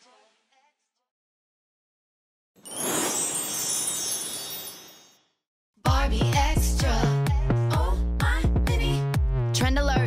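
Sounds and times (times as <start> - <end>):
sparkly chime: 2.6 - 5.4.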